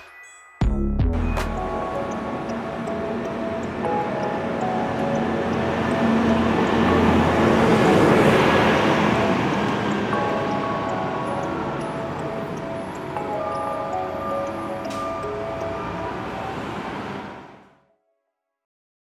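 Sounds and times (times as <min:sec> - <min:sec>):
background music: 0:00.0 - 0:17.8
bus driving past: 0:01.6 - 0:17.8.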